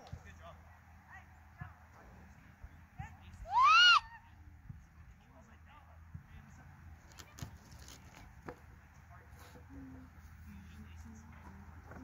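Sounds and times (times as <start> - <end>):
person whooping: 3.5 - 4.2.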